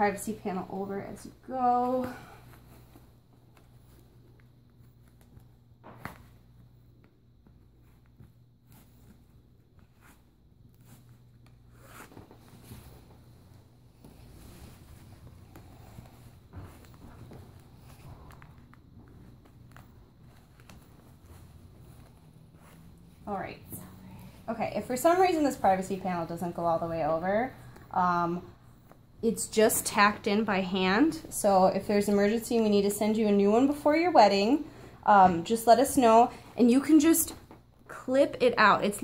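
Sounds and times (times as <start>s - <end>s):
fabric rustling: 0.0s - 37.7s.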